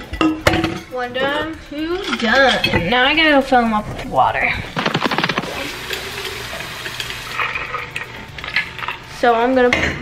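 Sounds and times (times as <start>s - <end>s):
metal bottles clinking: 4.6s - 10.0s
faucet running water: 4.7s - 8.8s.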